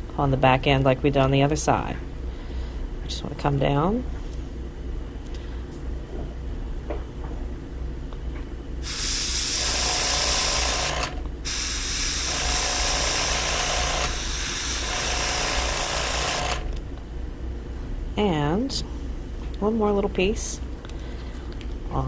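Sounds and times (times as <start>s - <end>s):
airbrush spraying hiss: 8.8s - 10.8s, 11.5s - 13.4s.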